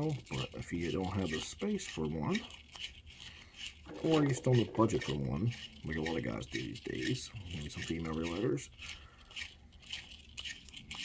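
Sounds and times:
metal case scraping on deburring tool: 0:03.8 - 0:07.0.

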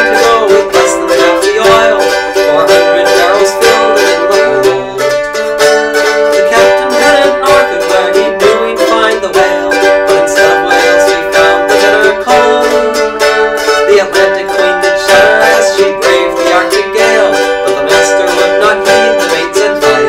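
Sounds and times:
mandolin picking: 0:00.0 - 0:20.0.

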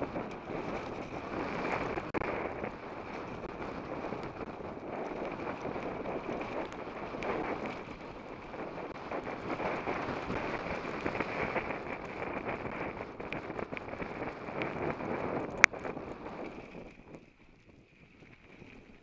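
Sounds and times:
bike tyres crunching on gravel: 0:00.0 - 0:19.0
wind buffeting microphone: 0:00.0 - 0:19.0.

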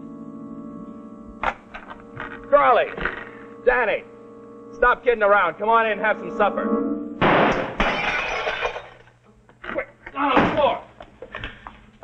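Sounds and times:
window glass shattering: 0:07.2 - 0:09.1.

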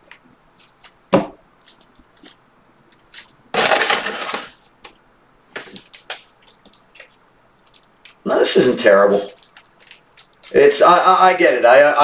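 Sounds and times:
wrapper crinkling as torn open: 0:07.6 - 0:10.8
cards clicking: 0:09.2 - 0:10.6.

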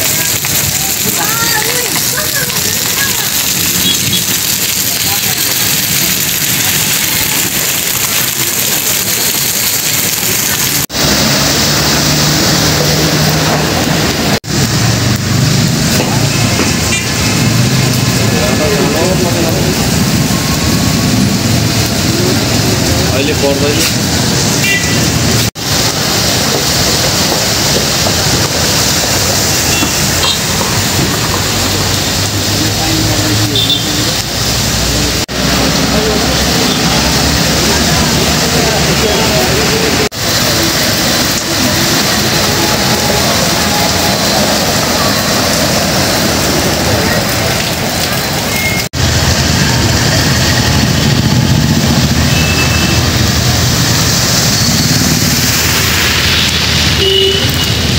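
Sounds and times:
tyres splashing through water: 0:00.0 - 0:57.9
vehicle engines running: 0:00.0 - 0:57.9.

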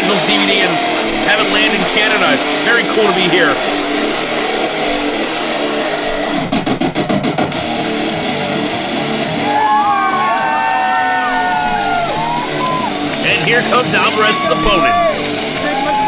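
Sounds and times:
rock music over loudspeaker: 0:00.0 - 0:16.0
sliding high tones: 0:09.4 - 0:16.0.

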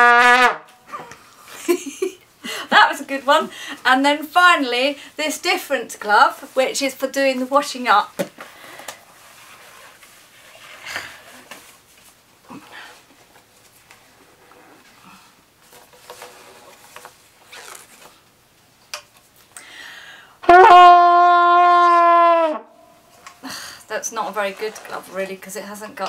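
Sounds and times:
trumpet note: 0:00.0 - 0:00.7, 0:20.4 - 0:22.8
rubber glove rustling: 0:15.6 - 0:18.3.

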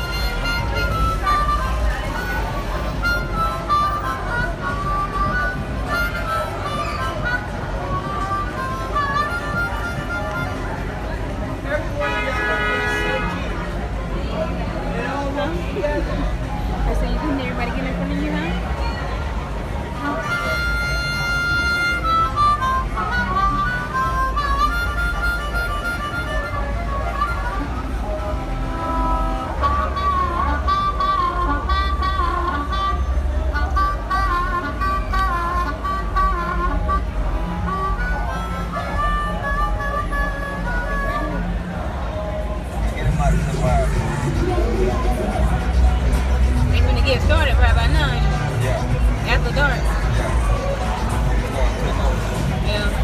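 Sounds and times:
harmonica melody with bent notes: 0:00.0 - 0:14.0, 0:15.6 - 0:53.0
street noise: 0:00.0 - 0:53.0
voices: 0:00.0 - 0:53.0
car horn steady note: 0:12.0 - 0:13.6
vehicle passing rumble: 0:41.5 - 0:53.0.

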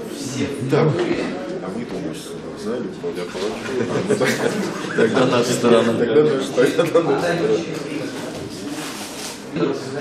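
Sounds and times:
murmur of people talking: 0:00.0 - 0:10.0.

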